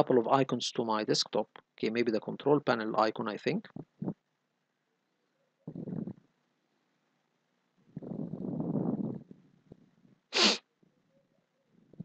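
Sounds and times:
person sneezing: 0:10.4 - 0:10.6.

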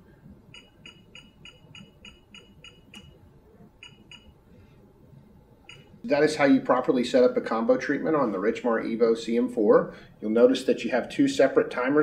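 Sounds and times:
short high beeps: 0:05.7 - 0:06.0.

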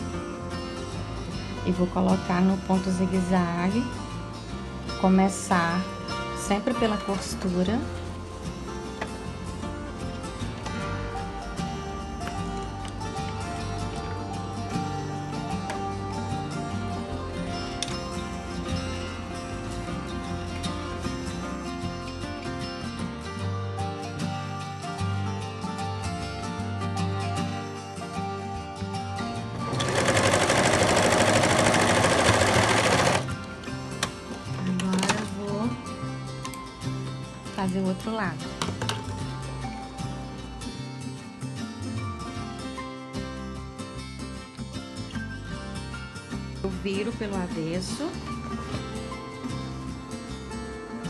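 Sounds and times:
background music: 0:00.0 - 0:51.0
sewing machine stitching: 0:29.7 - 0:33.3.

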